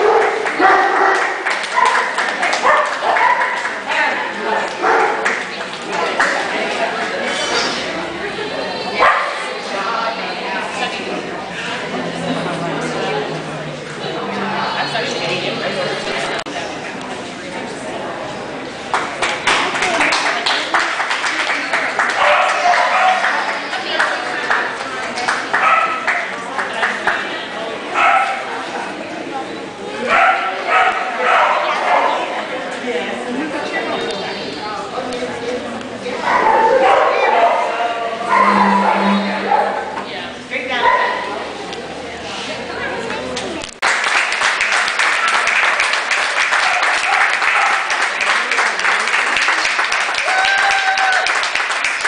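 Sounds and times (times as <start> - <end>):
people talking: 0.0 - 43.8
dogs barking and yipping: 36.3 - 39.9.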